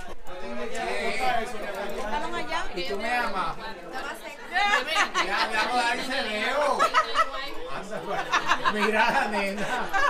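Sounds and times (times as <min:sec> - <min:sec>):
party crowd chatter: 0:00.0 - 0:10.0.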